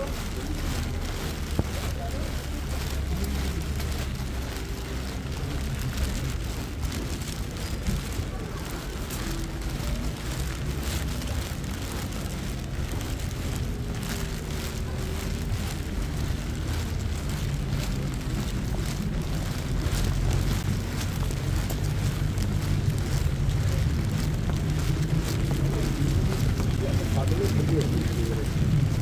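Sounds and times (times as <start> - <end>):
light hiss of rain: 0.0 - 29.0
low rumble of traffic: 0.0 - 29.0.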